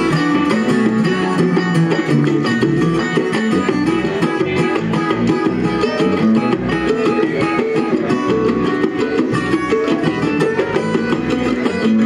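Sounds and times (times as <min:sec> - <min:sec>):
guitars and banjo playing: 0:00.0 - 0:12.0
hand drum: 0:00.0 - 0:12.0.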